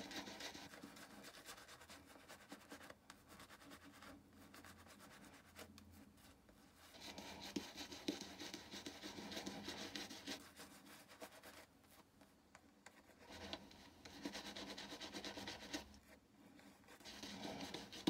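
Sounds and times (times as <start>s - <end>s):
shaving brush rubbing on skin: 6.9s - 11.6s, 13.3s - 15.9s.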